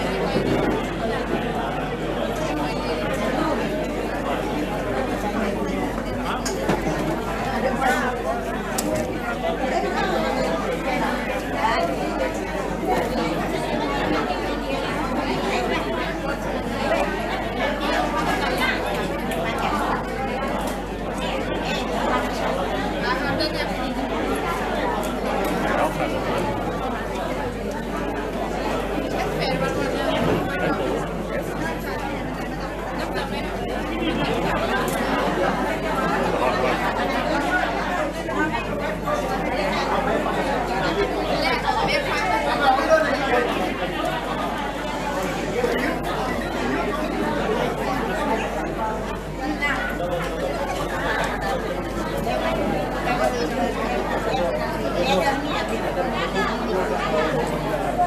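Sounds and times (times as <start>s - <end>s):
chatter of many people: 0.0s - 58.0s.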